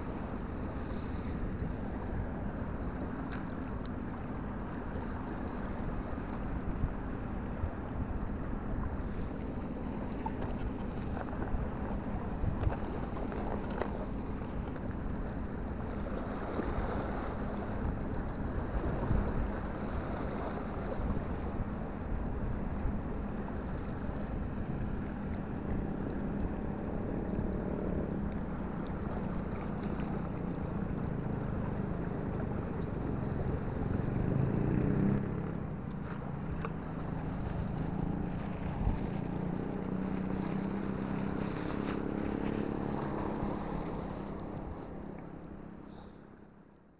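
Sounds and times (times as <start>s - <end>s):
waves washing against rocks: 0.0s - 45.9s
low engine hum: 0.0s - 46.9s
wind buffeting microphone: 4.2s - 45.9s.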